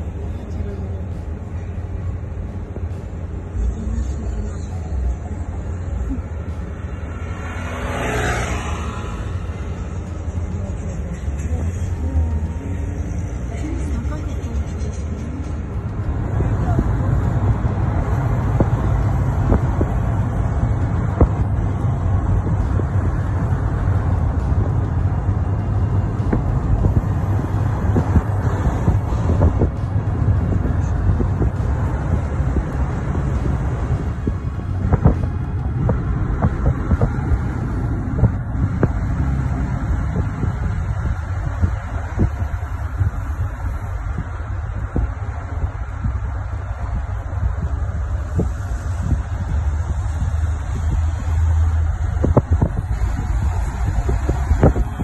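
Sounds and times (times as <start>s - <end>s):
wind buffeting microphone: 8.1s - 55.0s.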